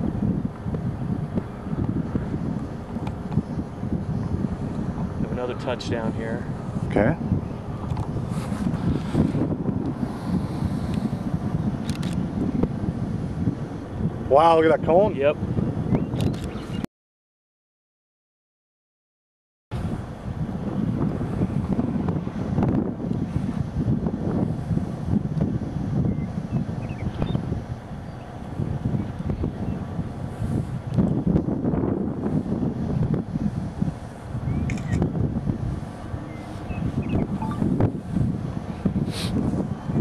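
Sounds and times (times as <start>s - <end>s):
gusty wind buffeting microphone: 0.0s - 16.8s, 19.7s - 40.0s.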